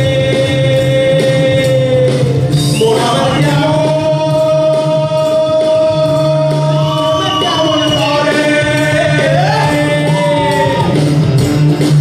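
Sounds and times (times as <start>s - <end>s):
singers singing live: 0.0s - 11.1s
guitars: 0.0s - 12.0s.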